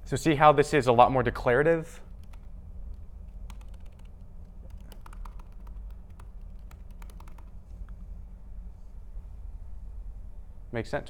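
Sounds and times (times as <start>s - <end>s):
low room hum: 0.0s - 11.0s
laptop keyboard clicks: 2.2s - 7.5s.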